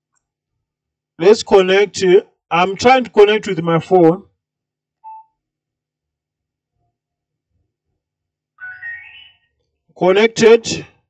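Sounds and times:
short electronic beep: 5.0 - 5.4, 8.6 - 9.5.

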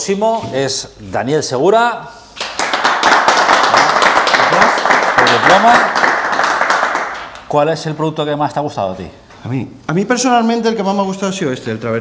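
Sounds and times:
people clapping: 2.4 - 7.6.

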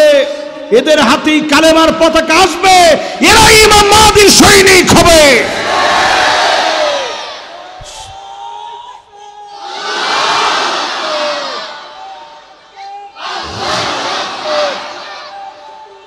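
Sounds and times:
crowd shouting in unison: 5.4 - 16.0.

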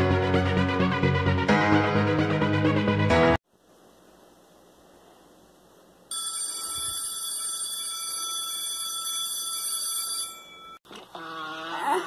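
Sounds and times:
steady electronic ringing tone: 6.1 - 10.8.

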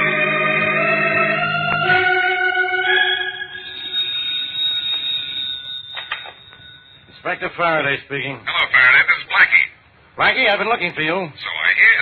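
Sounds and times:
organ music: 0.0 - 7.6
telephone bell ringing: 2.1 - 7.5.

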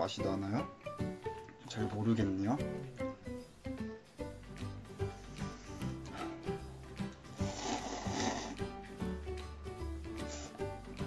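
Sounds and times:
background music: 0.0 - 11.0
person slurping noodles: 7.4 - 8.7.

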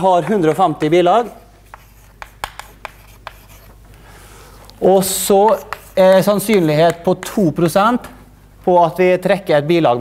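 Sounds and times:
chalk writing on a chalkboard: 1.2 - 3.8, 5.1 - 7.4.

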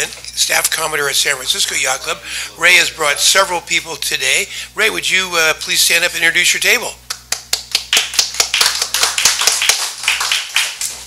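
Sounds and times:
audience applauding: 7.7 - 11.0.

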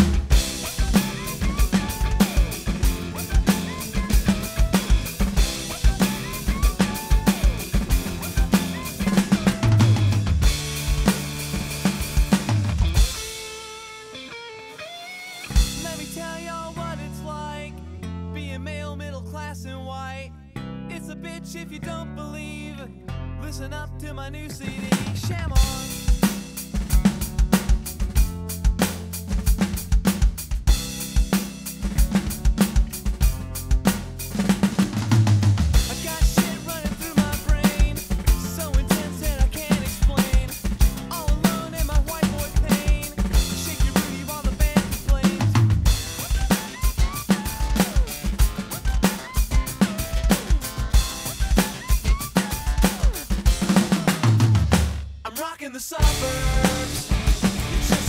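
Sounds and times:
electronic drum kit rock beat: 0.0 - 17.0, 24.6 - 58.0
recorded backing music: 0.0 - 58.0.

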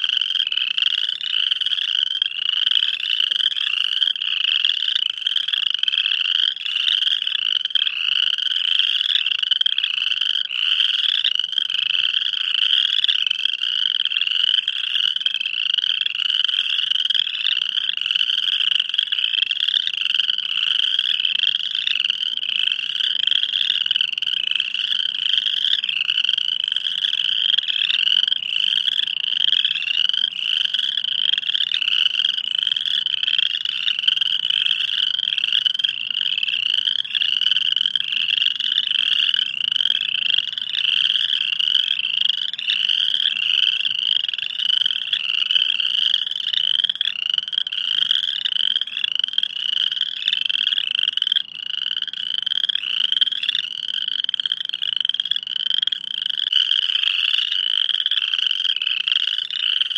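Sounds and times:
frogs calling high: 0.0 - 59.9
lower-pitched frog calls: 0.0 - 59.9.

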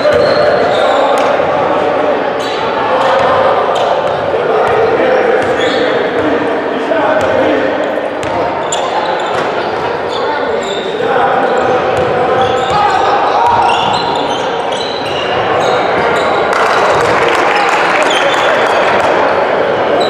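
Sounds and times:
sneakers squeaking: 0.0 - 6.5, 7.2 - 17.2
voices in large hall: 0.0 - 20.0.

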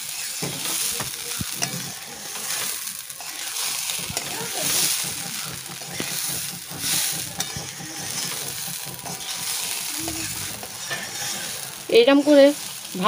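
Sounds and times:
light sizzle: 0.0 - 13.0
rice scraping against pan: 0.0 - 13.0.

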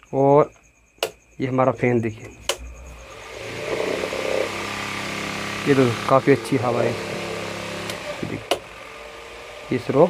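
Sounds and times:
man talking: 1.4 - 2.4, 5.6 - 7.1, 8.2 - 8.5, 9.7 - 10.0
fan air rushing: 2.3 - 10.0
table fan motor hum: 2.3 - 10.0.

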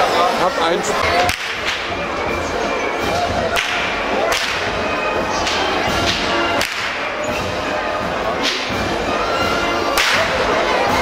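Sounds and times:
whips cracking: 1.2 - 1.9, 3.5 - 4.8, 5.4 - 7.2, 8.4 - 8.8, 9.9 - 10.4.

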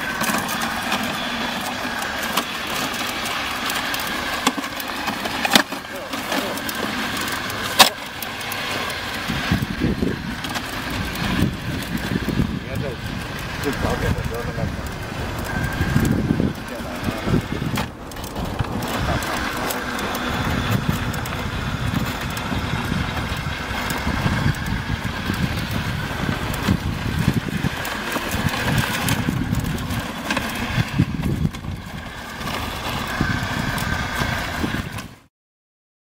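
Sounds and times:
electric motors whining: 0.0 - 35.3.

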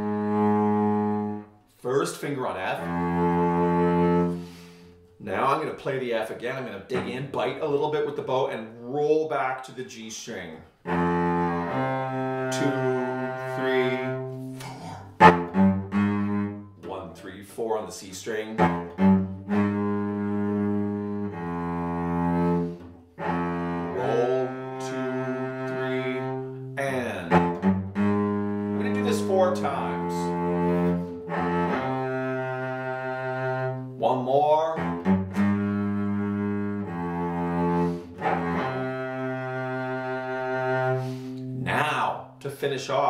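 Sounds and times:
solo cello bowed low: 0.0 - 5.7, 6.4 - 8.2, 10.8 - 42.1.

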